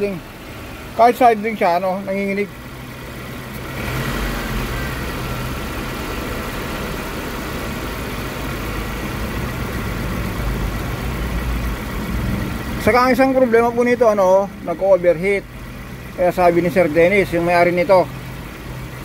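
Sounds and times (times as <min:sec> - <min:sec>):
car engine idling and misfiring: 0:00.0 - 0:19.0.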